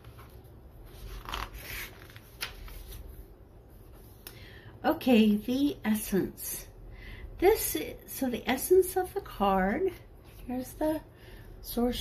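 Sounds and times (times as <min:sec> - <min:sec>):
paper pages rustling: 0:00.0 - 0:04.2.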